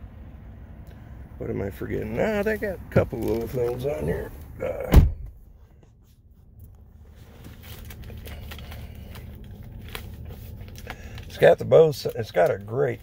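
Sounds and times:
car door shutting: 0:02.9 - 0:05.4.

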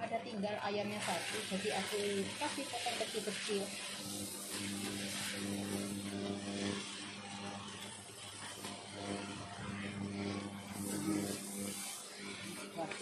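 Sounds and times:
low mechanical hum: 0:00.0 - 0:13.0
noodles sizzling in a wok: 0:00.3 - 0:13.0
wooden spatula scraping wok: 0:00.9 - 0:07.0.

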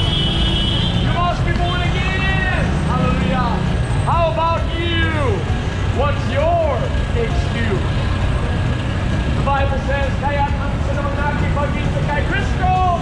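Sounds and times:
low rumble of traffic: 0:00.0 - 0:13.0
person shouting a sermon: 0:01.0 - 0:05.4, 0:09.7 - 0:13.0.

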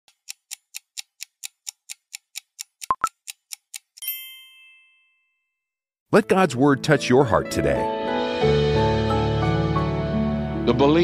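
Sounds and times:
clock ticking: 0:00.1 - 0:04.1
bell ding: 0:04.0 - 0:05.5.

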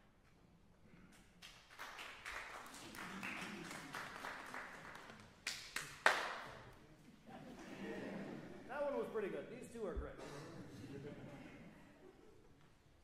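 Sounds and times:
loud claps close by: 0:01.4 - 0:06.6
audience applauding: 0:01.4 - 0:06.7.

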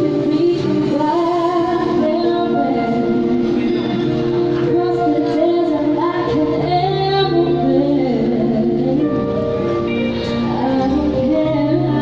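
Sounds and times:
woman singing: 0:00.0 - 0:04.0, 0:04.6 - 0:12.0
electric keyboard: 0:00.0 - 0:12.0.

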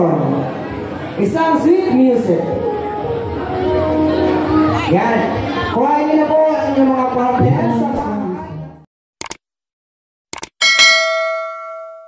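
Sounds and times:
fiesta music: 0:00.4 - 0:08.8
bell-like ding: 0:10.6 - 0:12.0.

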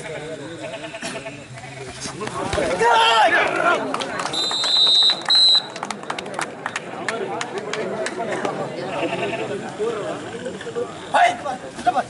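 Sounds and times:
referee's whistle blasts: 0:04.3 - 0:05.8.

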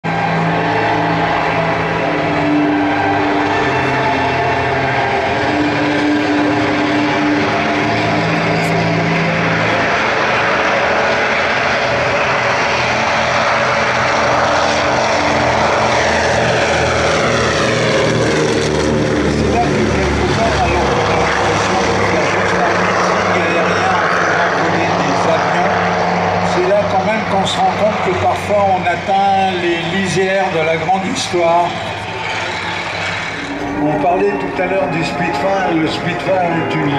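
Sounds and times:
propeller aircraft engines: 0:00.0 - 0:36.9.

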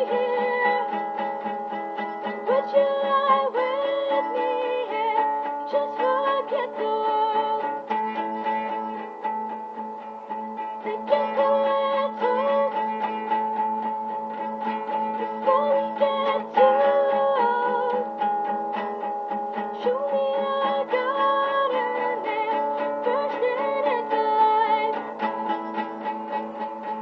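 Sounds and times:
girl singing: 0:00.0 - 0:09.1, 0:10.7 - 0:26.0
classical guitar strummed: 0:00.0 - 0:27.0.

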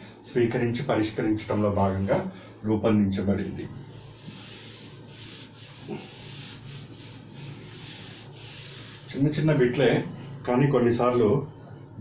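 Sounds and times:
duster rubbing on whiteboard: 0:03.9 - 0:09.6.

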